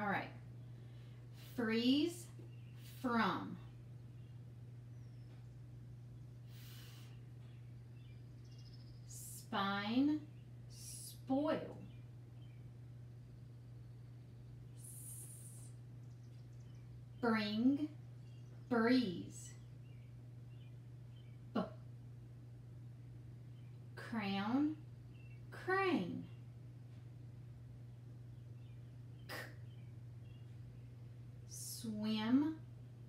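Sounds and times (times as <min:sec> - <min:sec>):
steady low hum: 0:00.0 - 0:33.0
woman saying a letter sound: 0:01.5 - 0:02.3, 0:02.9 - 0:03.6, 0:09.1 - 0:11.9, 0:14.8 - 0:15.8, 0:17.2 - 0:18.0, 0:18.7 - 0:19.6, 0:24.0 - 0:24.8, 0:25.6 - 0:26.3, 0:31.5 - 0:32.6.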